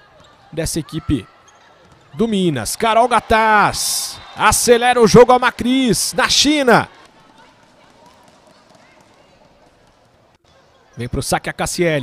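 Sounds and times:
murmur of crowd voices: 0.0s - 11.2s.

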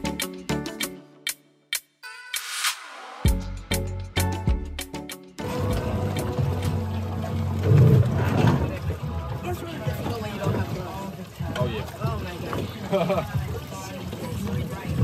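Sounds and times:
background music: 0.0s - 12.2s
water splashing and dripping: 4.9s - 15.0s
people's voices: 8.1s - 15.0s.

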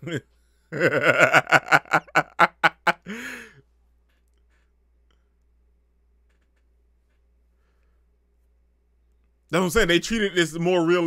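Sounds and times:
man sighing: 3.0s - 3.6s
faint clicks: 4.0s - 5.6s.

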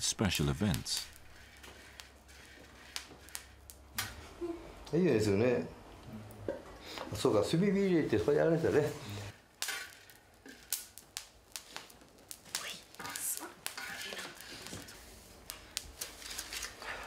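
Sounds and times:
coffee beans crackling and popping: 0.3s - 5.0s, 7.6s - 17.0s.

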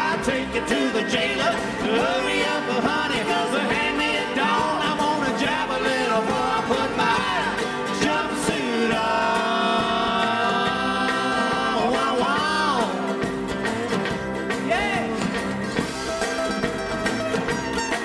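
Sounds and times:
string band playing bluegrass: 0.0s - 18.0s.

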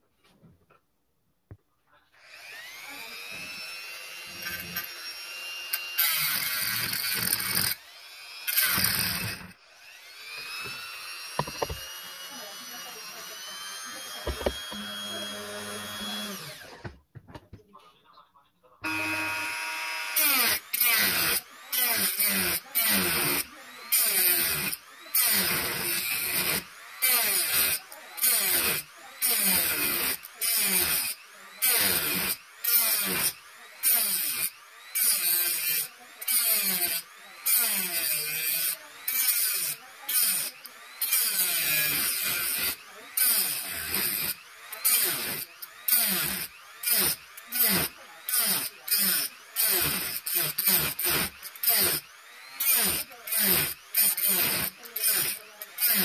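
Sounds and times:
small lathe motor whining: 2.2s - 16.8s, 18.8s - 56.0s.

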